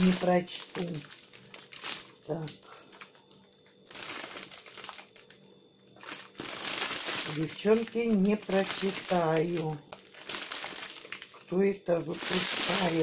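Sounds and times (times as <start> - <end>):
plastic sweet bags crinkling: 0.0 - 13.0.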